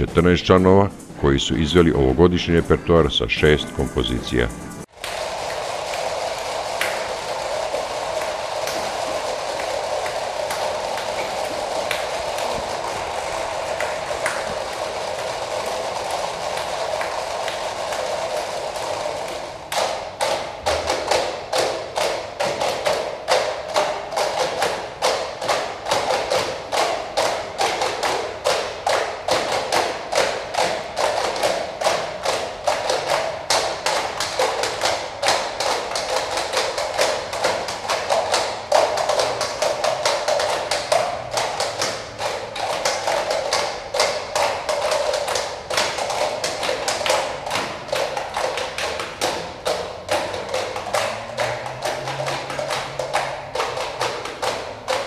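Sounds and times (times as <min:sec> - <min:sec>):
shaking rustling percussion: 0:00.0 - 0:55.0.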